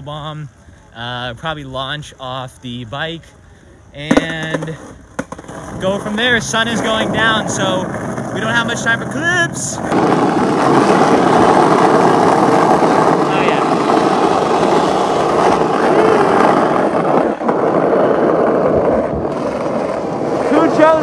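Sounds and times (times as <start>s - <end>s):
skateboard wheels rolling on asphalt: 0.0s - 21.0s
wind on microphone: 4.2s - 21.0s.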